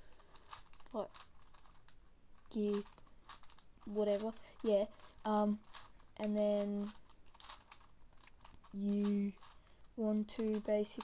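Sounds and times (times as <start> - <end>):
plastic puzzle gears clicking: 0.0 - 11.0.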